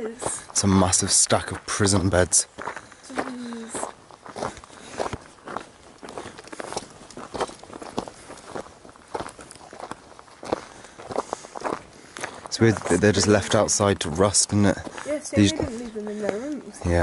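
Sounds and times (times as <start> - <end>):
footsteps on gravel: 0.0 - 17.0
grass rustling: 1.3 - 17.0.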